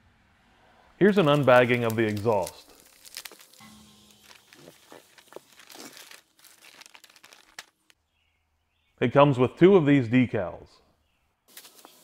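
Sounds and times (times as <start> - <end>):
plastic bags crinkling: 1.0 - 8.0.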